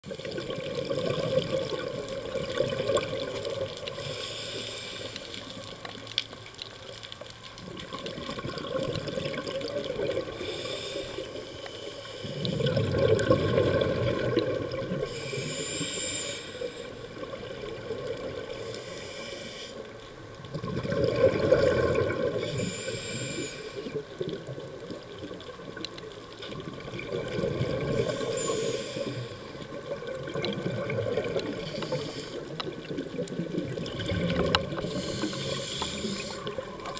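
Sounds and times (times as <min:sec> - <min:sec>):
bubbling exhaled air: 0:00.0 - 0:05.7, 0:07.6 - 0:11.5, 0:12.1 - 0:19.5, 0:20.5 - 0:25.8, 0:26.5 - 0:36.9
regulator hiss on inhale: 0:03.8 - 0:06.0, 0:10.3 - 0:12.8, 0:14.9 - 0:17.3, 0:18.4 - 0:20.2, 0:22.3 - 0:24.1, 0:27.9 - 0:29.8, 0:31.4 - 0:32.8, 0:34.7 - 0:36.7.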